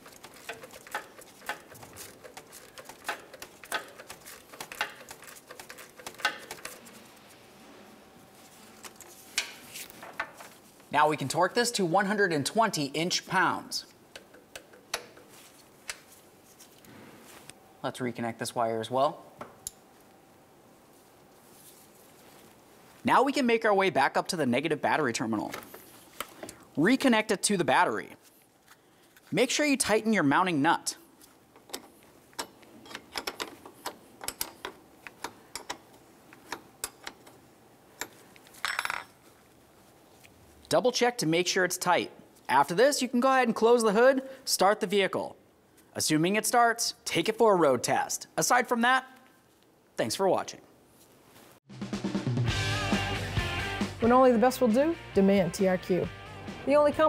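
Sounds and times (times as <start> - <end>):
wrench clicking on metal: 0.0 - 6.8, 31.6 - 37.3.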